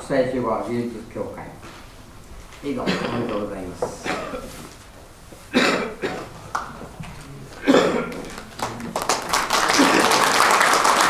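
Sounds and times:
person coughing: 2.8 - 4.6, 5.5 - 6.4, 7.6 - 8.3.

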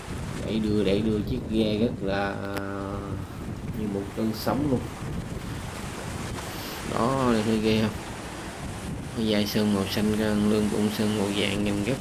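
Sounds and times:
sea surf breaking: 0.0 - 12.0
wind buffeting microphone: 0.0 - 12.0.

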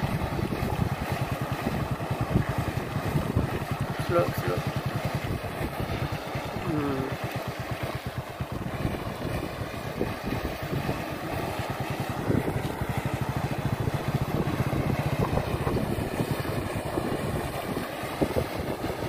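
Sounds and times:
small motorcycle engine running: 0.0 - 19.0.

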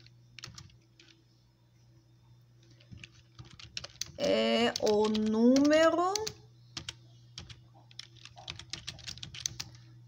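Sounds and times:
computer keyboard typing: 0.0 - 1.2, 2.6 - 9.8.

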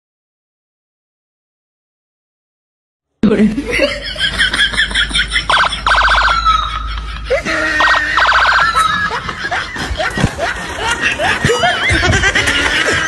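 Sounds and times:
voice: 3.2 - 4.0, 7.3 - 9.2
electronic alarm warble: 5.5 - 6.8, 7.8 - 9.2.

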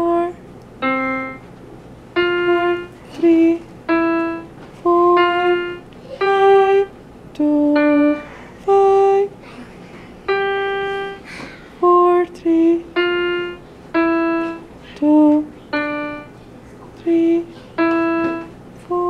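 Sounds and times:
electronic keyboard tune: 0.8 - 6.9, 7.5 - 9.2, 10.2 - 11.2, 11.8 - 19.0.

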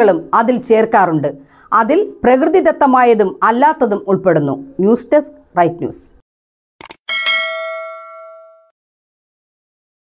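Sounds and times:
bright notification bell ding: 7.1 - 8.7.

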